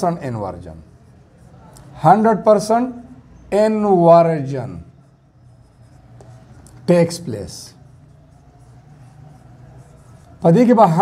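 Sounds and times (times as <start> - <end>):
marker pen on whiteboard: 0.0 - 11.0.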